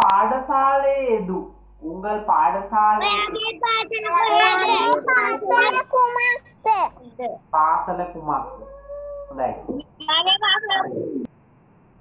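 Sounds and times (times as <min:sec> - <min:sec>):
young child speaking: 0:03.0 - 0:07.4, 0:08.5 - 0:09.3.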